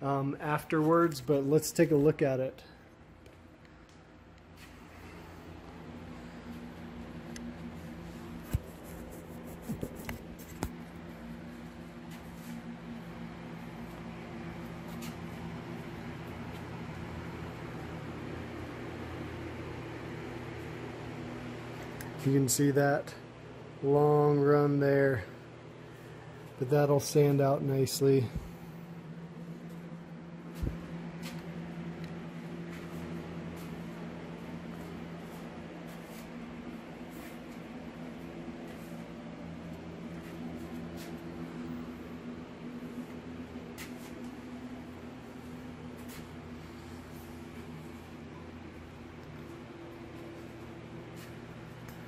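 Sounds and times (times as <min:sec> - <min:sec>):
machinery humming: 0:00.0 - 0:52.0.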